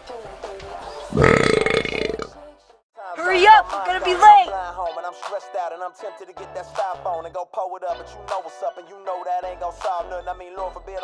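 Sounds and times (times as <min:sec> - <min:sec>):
loud rough burp: 0:01.1 - 0:02.4.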